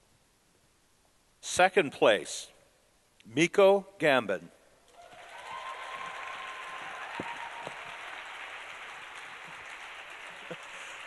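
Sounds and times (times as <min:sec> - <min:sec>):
audience applauding: 0:05.0 - 0:11.0.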